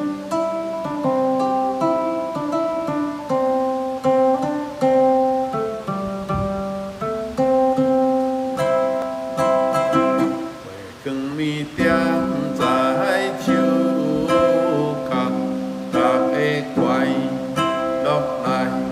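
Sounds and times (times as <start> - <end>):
ukulele playing chords and melody: 0.0 - 18.9.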